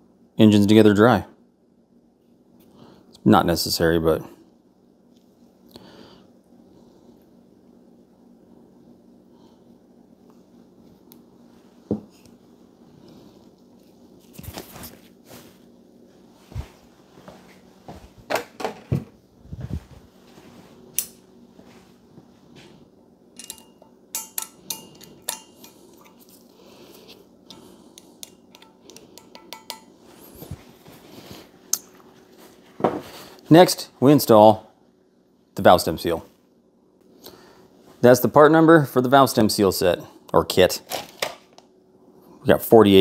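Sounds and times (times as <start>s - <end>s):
metal spring seats clinking: 23.4s - 26.2s.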